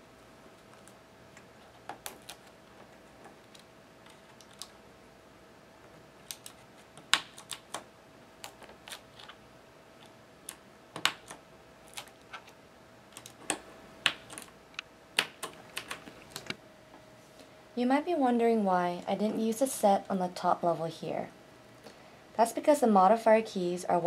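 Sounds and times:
keycaps clicking onto keyboard switches: 0:13.1 - 0:14.5.

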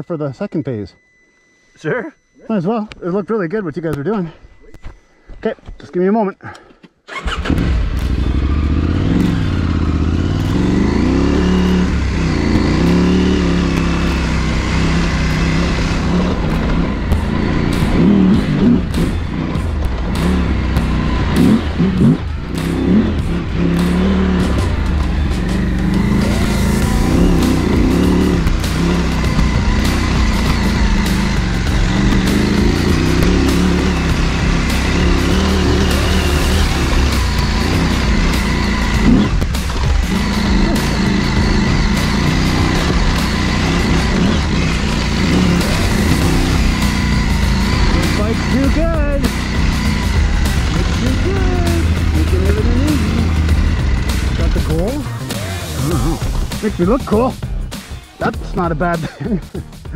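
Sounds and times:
motorcycle engine revving under load: 0:07.1 - 0:58.7.

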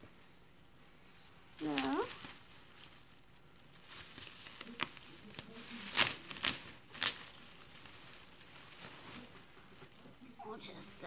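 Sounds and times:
plastic bag rustling: 0:01.6 - 0:10.4.

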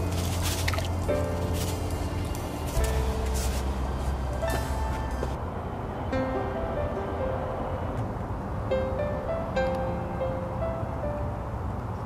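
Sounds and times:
background music with low bass: 0:00.0 - 0:05.4.

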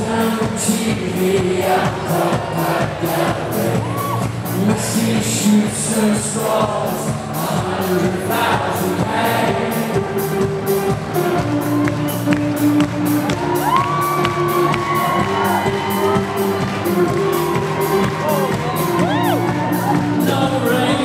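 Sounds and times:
live band playing: 0:00.0 - 0:21.0
crowd cheering and whooping: 0:03.7 - 0:04.4, 0:11.4 - 0:21.0.

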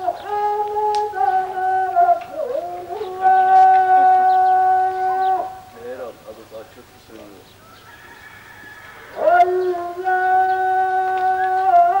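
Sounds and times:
rooster crowing: 0:07.6 - 0:11.7.

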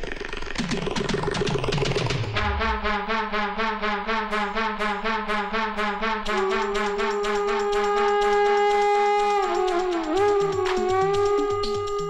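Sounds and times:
falling pitch slides: 0:00.0 - 0:12.0
fast drum strokes: 0:00.5 - 0:03.1, 0:06.3 - 0:12.0.

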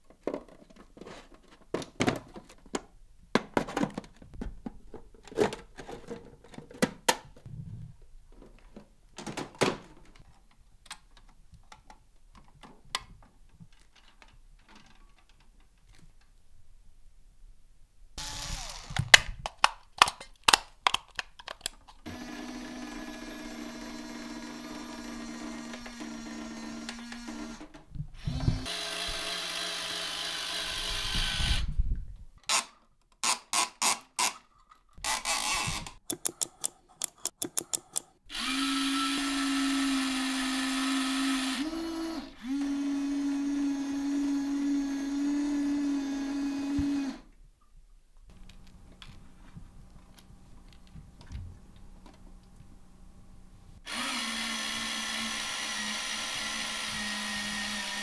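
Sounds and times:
toy motor whining: 0:18.2 - 0:19.0, 0:28.2 - 0:31.7.

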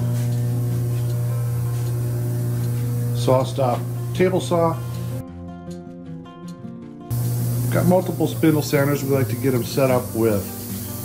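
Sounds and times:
transformer humming: 0:00.0 - 0:05.2, 0:07.1 - 0:11.0.

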